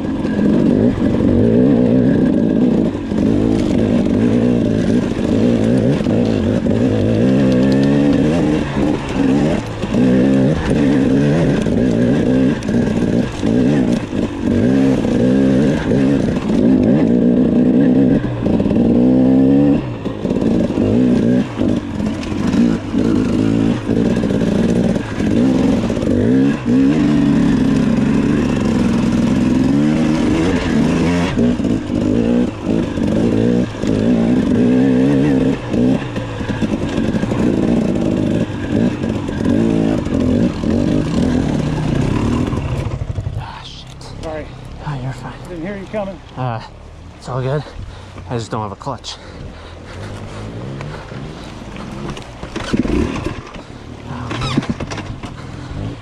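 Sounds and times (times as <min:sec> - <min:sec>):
dirt bike engine revving: 0:00.0 - 0:56.0
knocks and clatter over rocks: 0:00.0 - 0:56.0.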